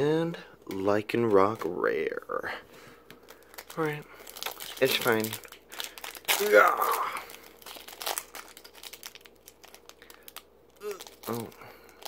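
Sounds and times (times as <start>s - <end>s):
foil wrapper crinkling: 3.2s - 12.0s
plastic packaging crackling: 3.2s - 12.0s.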